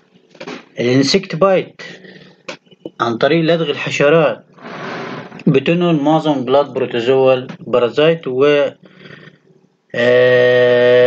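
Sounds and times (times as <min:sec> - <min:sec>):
man saying uhhh: 0:09.9 - 0:11.0.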